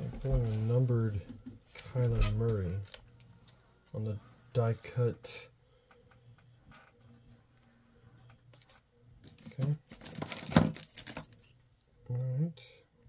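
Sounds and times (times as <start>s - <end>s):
cards rustling: 8.4s - 11.8s.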